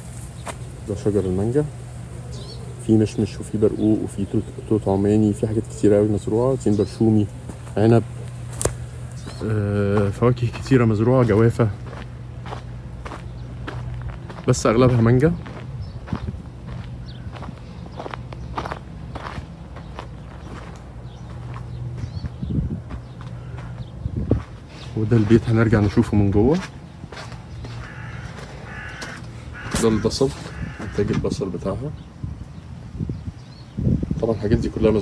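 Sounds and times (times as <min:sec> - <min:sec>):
footsteps on sandy dirt path: 0:00.0 - 0:01.5, 0:03.4 - 0:31.2
steady low hum: 0:00.0 - 0:35.0
man speaking: 0:02.8 - 0:08.2, 0:09.4 - 0:11.8
bird calling faintly: 0:27.5 - 0:31.4.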